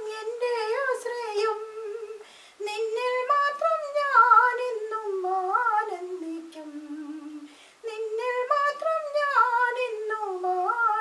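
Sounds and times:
person singing a hymn unaccompanied: 0.0 - 11.0.

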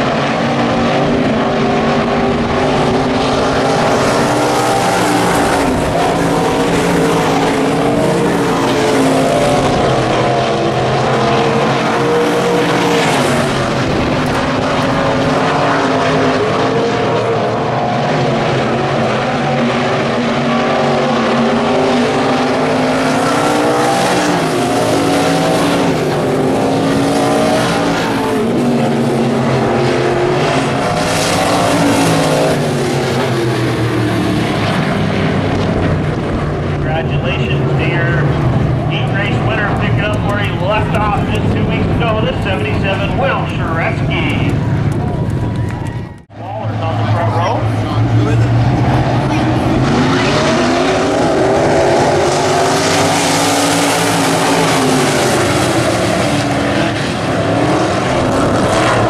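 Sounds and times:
race car engines: 0.0 - 59.0.

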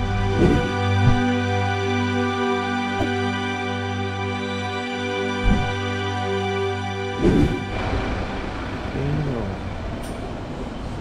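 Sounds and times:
steady rushing noise: 5.4 - 5.8, 7.1 - 11.0.

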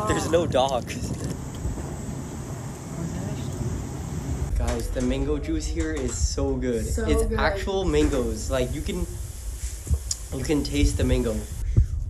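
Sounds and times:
vehicle engine and road rumble: 0.0 - 11.8.

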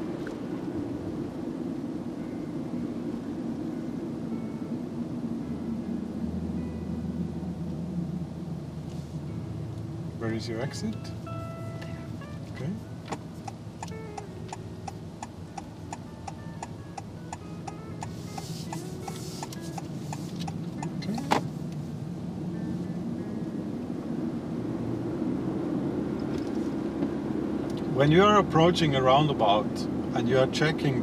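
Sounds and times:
car engine and road noise: 0.0 - 31.0
turn signal ticking: 10.7 - 21.8, 25.7 - 28.0.

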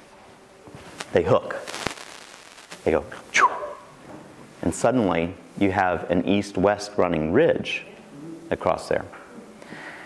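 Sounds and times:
man speaking: 1.1 - 1.7, 2.8 - 3.8, 4.6 - 9.2.

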